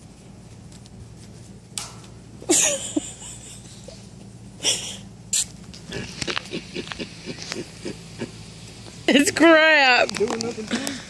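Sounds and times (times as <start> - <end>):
baboon grunting rapidly: 4.6 - 8.6.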